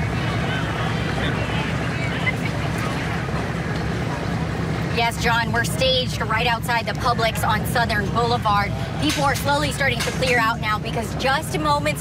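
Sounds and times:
faint distant voices: 0.0 - 12.0
vehicle engines rumbling: 0.0 - 12.0.

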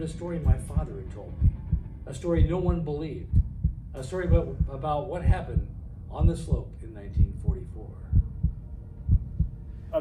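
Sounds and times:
heartbeat thumps: 0.0 - 9.8.

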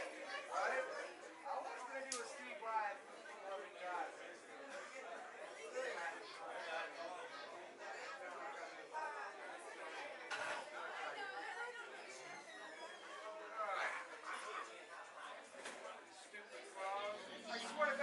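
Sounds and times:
background chatter: 0.0 - 18.0.

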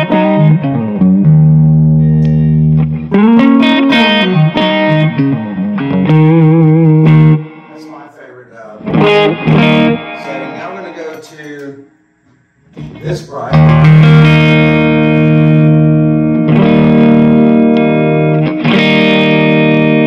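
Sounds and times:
electric guitar with vibrato: 0.0 - 8.0, 8.8 - 11.9, 12.7 - 20.0.

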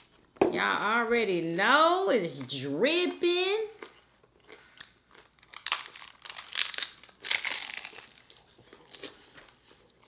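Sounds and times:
taco shell crunching: 3.8 - 10.0.

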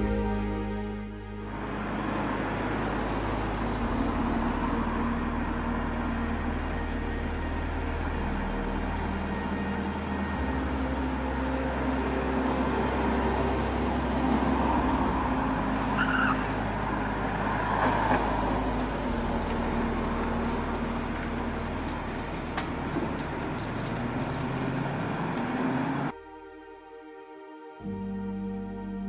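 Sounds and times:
vehicle engines rumbling: 0.0 - 26.2
cars going by: 1.3 - 26.1.

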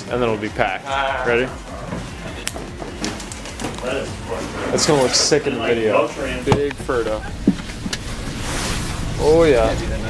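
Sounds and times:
background chatter of voices: 0.0 - 10.0.

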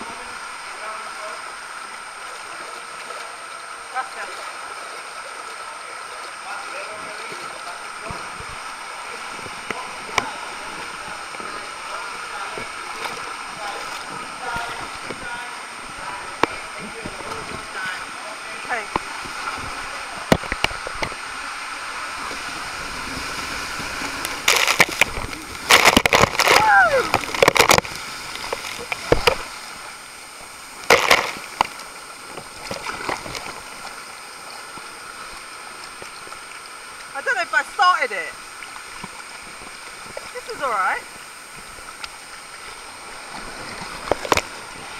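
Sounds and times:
water rushing under ring: 0.0 - 44.9
splashes and knocks: 6.9 - 18.0, 18.7 - 21.4, 22.2 - 34.0, 38.5 - 44.9.

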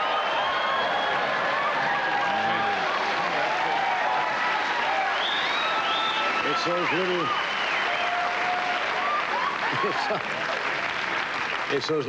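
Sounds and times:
cheers and shouts: 0.0 - 11.4
audience applauding: 0.0 - 12.0.

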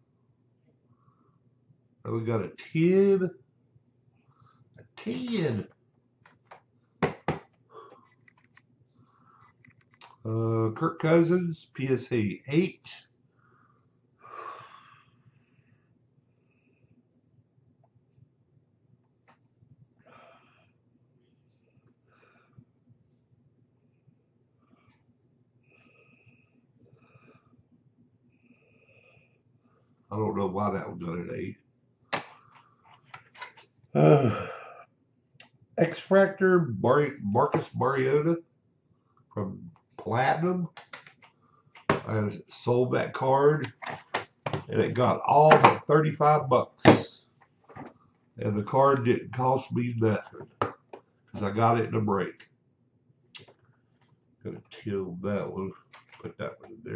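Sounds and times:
plastic slab knocking on desk: 7.0 - 7.5.

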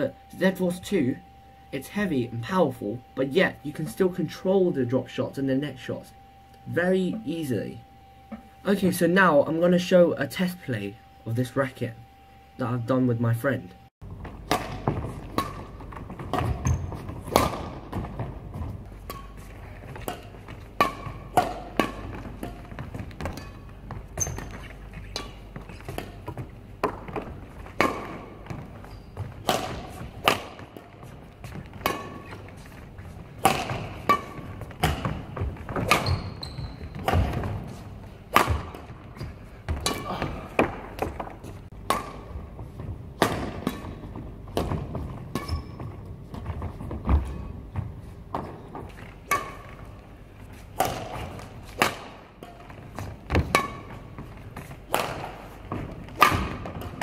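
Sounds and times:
rackets hitting shuttlecock: 14.2 - 18.3, 19.0 - 32.8, 33.4 - 45.8, 49.2 - 57.0
footsteps on court: 22.0 - 43.2, 43.9 - 51.8.

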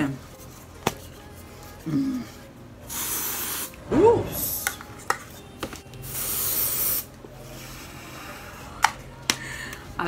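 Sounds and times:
aerosol spray hissing: 2.9 - 3.8, 6.1 - 7.1.

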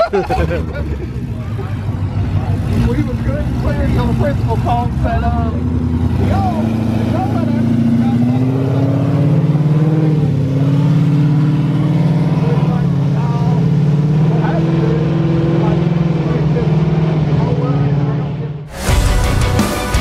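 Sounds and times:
people talking: 0.0 - 5.6, 6.2 - 8.9, 12.3 - 13.7, 14.3 - 19.0
loud car engine revving: 0.0 - 20.0.

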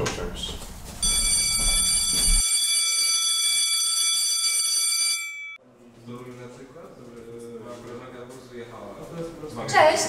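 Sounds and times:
electric school bell ringing: 1.0 - 5.6.

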